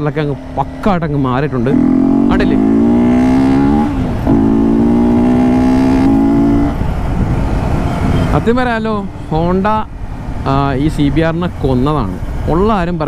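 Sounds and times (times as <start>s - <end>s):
motorcycle engine accelerating: 0.0s - 8.4s.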